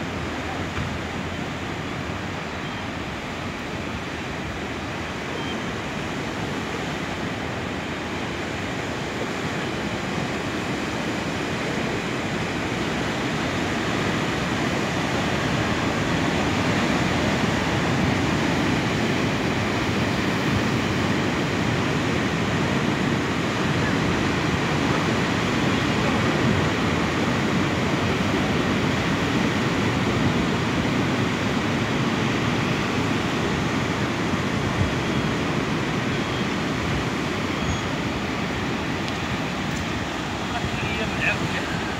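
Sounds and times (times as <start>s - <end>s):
surf crashing on rocks: 3.0s - 41.9s.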